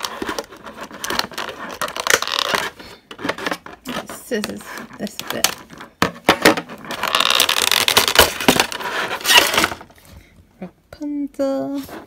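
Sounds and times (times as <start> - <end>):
plastic packaging crackling: 0.0 - 5.7, 6.8 - 9.9
plastic crinkling: 0.0 - 6.0, 6.8 - 10.0.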